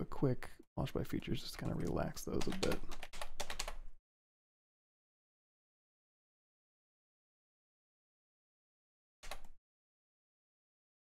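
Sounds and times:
computer keyboard keys clicking: 0:01.6 - 0:03.8, 0:09.2 - 0:09.6.

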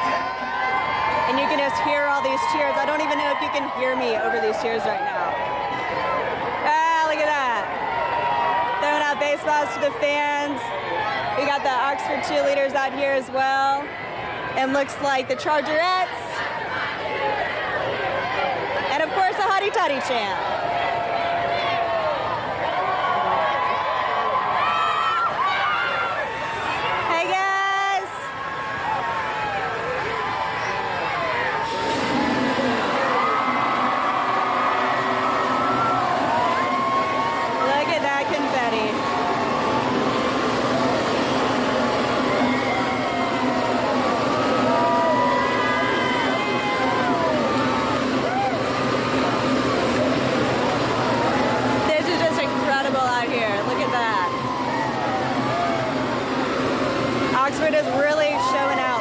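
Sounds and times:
crowd cheering and shouting: 0:00.0 - 0:59.0
steady low hum: 0:00.0 - 0:59.0.

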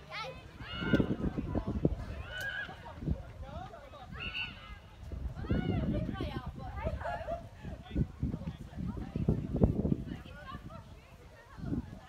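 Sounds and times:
low rumble of field noise: 0:00.0 - 0:12.0.

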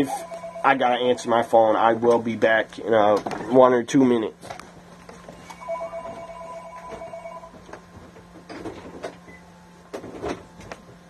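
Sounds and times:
held two-note tone: 0:00.0 - 0:01.7, 0:05.4 - 0:07.6
low hum: 0:00.0 - 0:02.9.

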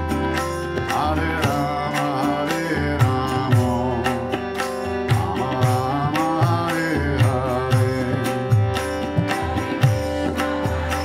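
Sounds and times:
harmonium chords: 0:00.0 - 0:11.0
tabla beat: 0:00.0 - 0:11.0.

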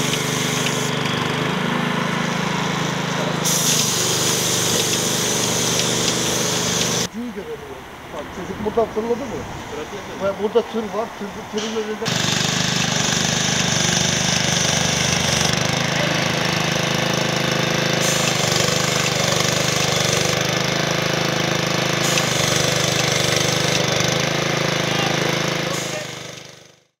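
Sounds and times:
small petrol engine running: 0:00.0 - 0:07.1, 0:11.6 - 0:26.9.

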